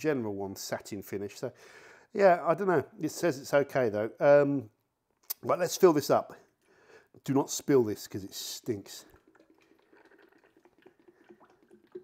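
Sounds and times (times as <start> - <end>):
small drips: 8.6 - 12.0
liquid trickling into plastic bottle: 9.0 - 12.0.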